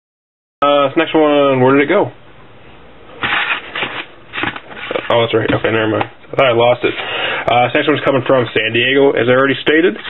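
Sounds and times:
envelopes rustling and sliding: 3.2s - 5.8s.

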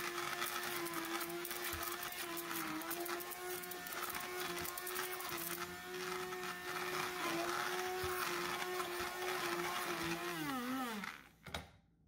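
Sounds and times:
immersion blender motor whine: 0.0s - 11.4s.

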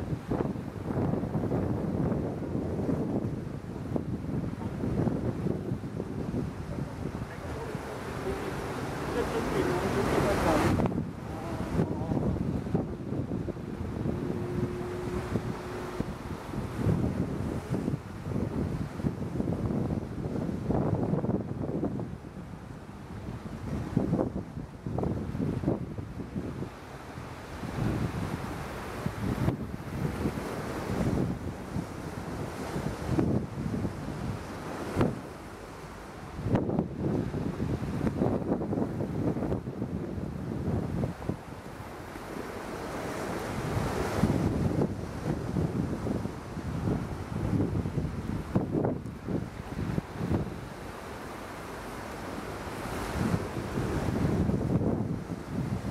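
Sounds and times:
sea water washing: 0.0s - 55.9s
wind buffeting microphone: 0.0s - 55.9s.

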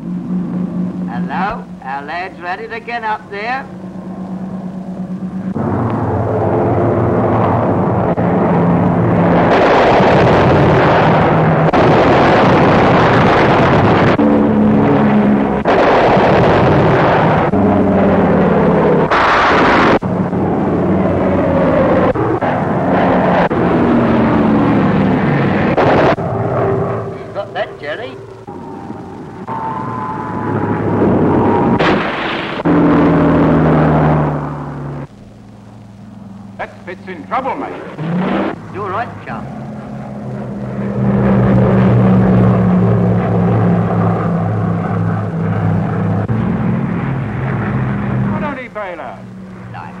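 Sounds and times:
fighter plane piston engine diving: 0.0s - 35.1s, 35.9s - 50.0s.

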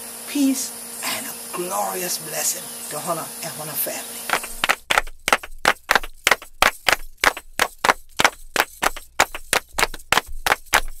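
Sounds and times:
fast sharp percussion strikes: 4.3s - 11.0s.

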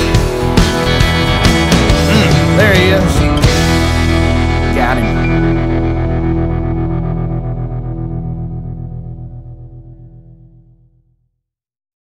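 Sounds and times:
distorted electric guitar chord pulsing: 0.0s - 11.0s.

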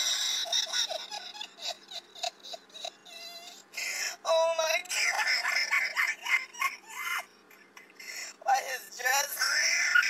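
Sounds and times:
voice-changed high-pitched sounds: 8.4s - 10.0s.

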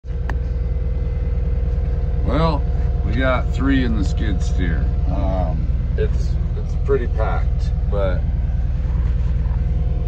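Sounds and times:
diesel engine running: 0.0s - 10.0s.

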